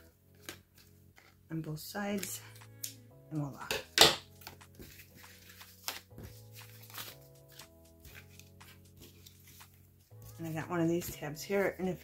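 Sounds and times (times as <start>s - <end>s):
soft background music: 0.0s - 12.0s
paper rustling: 4.3s - 12.0s.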